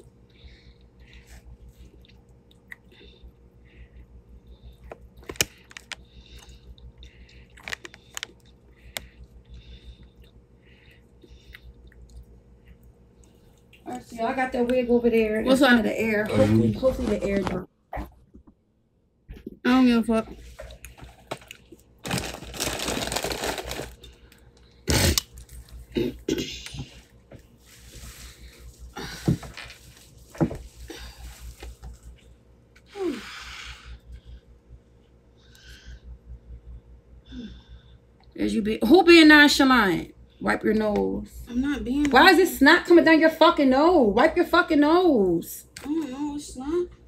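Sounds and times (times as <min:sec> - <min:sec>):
soft breaths: 0:00.0 - 0:02.1, 0:02.9 - 0:11.9
chewing food with mouth clicks: 0:00.2 - 0:03.6, 0:04.3 - 0:13.9
crinkling and rustling: 0:07.6 - 0:09.1, 0:20.3 - 0:24.7, 0:26.8 - 0:32.3.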